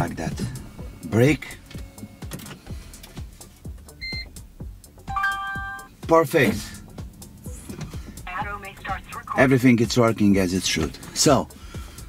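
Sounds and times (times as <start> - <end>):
multi-tone chime: 5.1 - 5.9.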